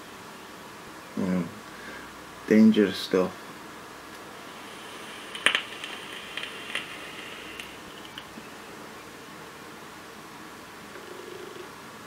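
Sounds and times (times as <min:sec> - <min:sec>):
faint hiss: 0:00.0 - 0:12.0
liquid crackling on hot coil: 0:04.1 - 0:08.4.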